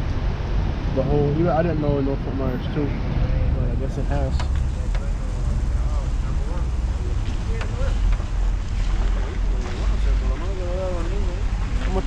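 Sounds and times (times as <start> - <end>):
faint voices talking: 1.0 - 12.0.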